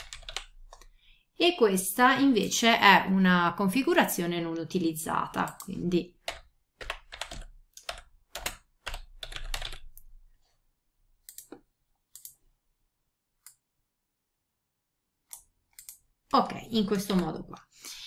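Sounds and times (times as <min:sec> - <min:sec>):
typing on computer keyboard: 0:00.0 - 0:01.0, 0:05.4 - 0:10.1, 0:11.3 - 0:12.4, 0:15.3 - 0:16.0.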